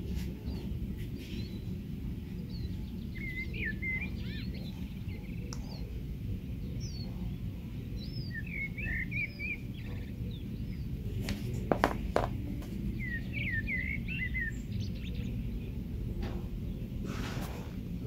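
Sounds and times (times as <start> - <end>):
small birds chirping: 0.0 - 17.9.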